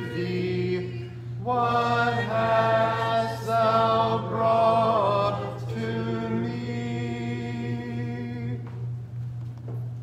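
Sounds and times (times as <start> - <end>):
congregation singing a hymn: 0.0 - 8.7.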